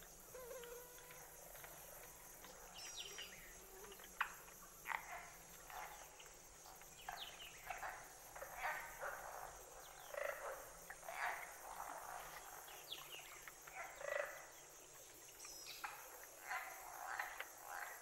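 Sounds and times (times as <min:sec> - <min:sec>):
insect buzz: 0:00.0 - 0:18.0.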